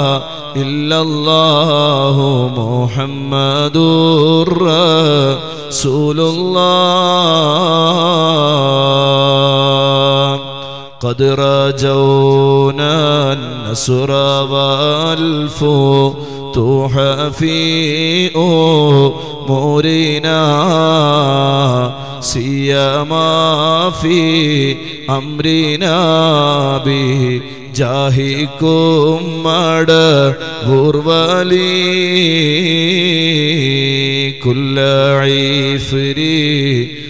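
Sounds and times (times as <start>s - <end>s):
man chanting into microphone: 0.0s - 37.0s.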